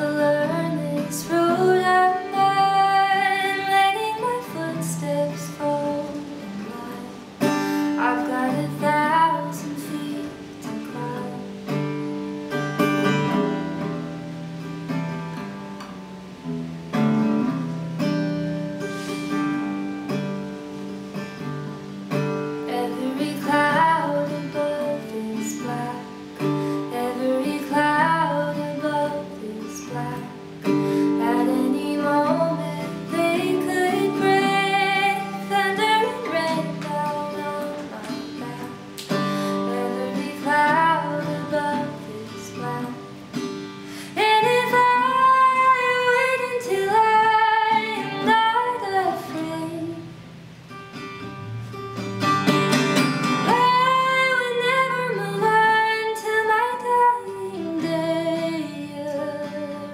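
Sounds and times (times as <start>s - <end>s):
woman singing: 0.0s - 14.2s, 21.8s - 50.2s, 53.3s - 59.9s
strummed acoustic guitar: 0.0s - 59.9s.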